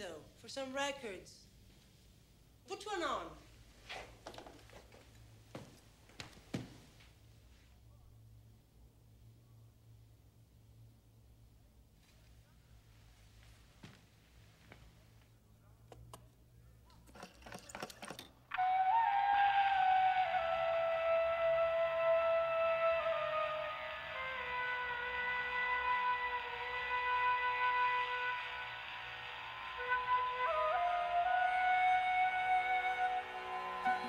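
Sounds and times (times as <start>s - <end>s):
flute melody over held notes: 18.5s - 34.0s.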